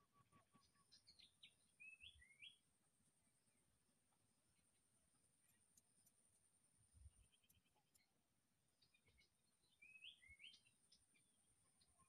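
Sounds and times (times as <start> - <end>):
faint bird chirps: 0.0 - 2.7, 4.5 - 12.0.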